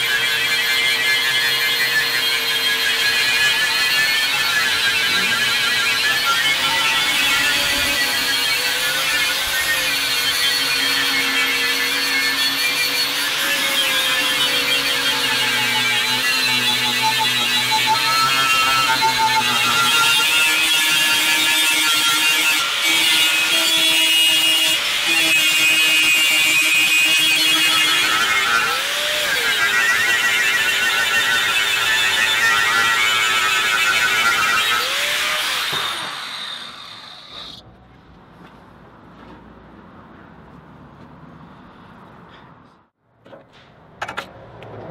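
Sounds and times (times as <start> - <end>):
angle grinder grinding metal: 0.0 - 37.6.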